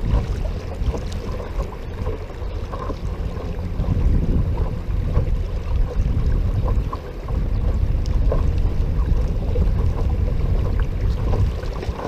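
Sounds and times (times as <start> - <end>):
faint steady motor hum: 0.0 - 12.0
water rushing and splashing: 0.0 - 12.0
wind buffeting microphone: 0.0 - 12.0.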